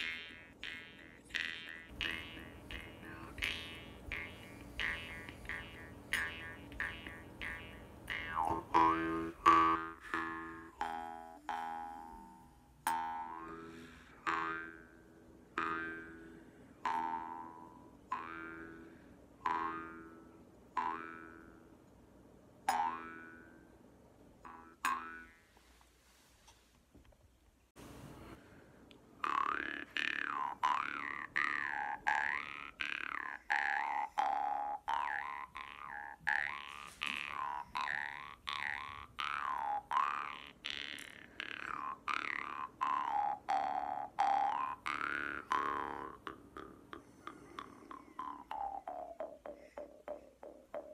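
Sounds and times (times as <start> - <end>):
jaw harp twanging: 0.0 - 15.0, 29.2 - 50.9.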